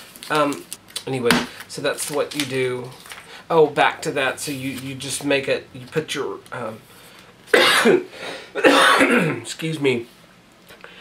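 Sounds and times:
man coughing: 0:07.5 - 0:09.5.

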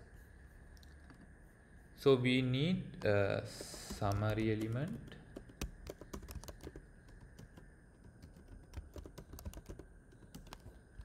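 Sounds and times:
keyboard typing: 0:03.5 - 0:11.0.

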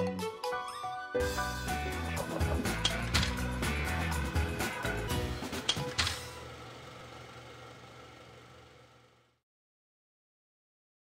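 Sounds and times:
film projector running: 0:02.1 - 0:09.4.

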